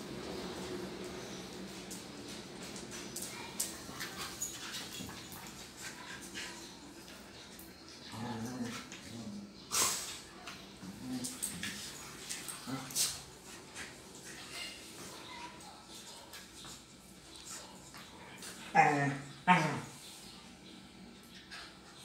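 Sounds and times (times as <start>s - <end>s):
dogs growling and whimpering: 7.9s - 9.7s, 18.6s - 20.0s.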